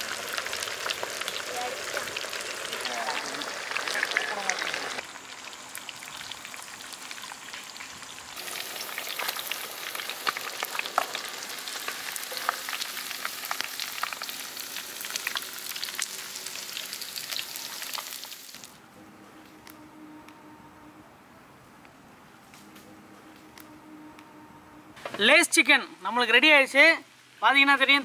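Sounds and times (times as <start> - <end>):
chicken deep-frying in oil: 0.0 - 18.8.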